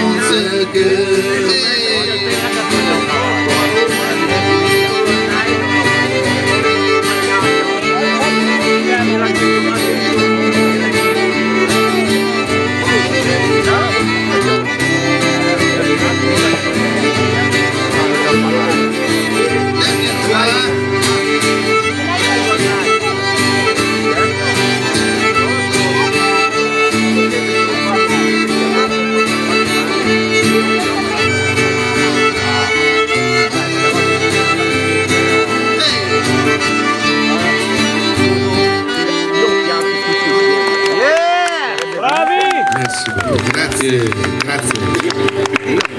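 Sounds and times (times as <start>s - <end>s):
acoustic guitar: 0.0s - 41.8s, 43.3s - 45.9s
button accordion: 0.0s - 42.0s
fiddle: 0.0s - 45.9s.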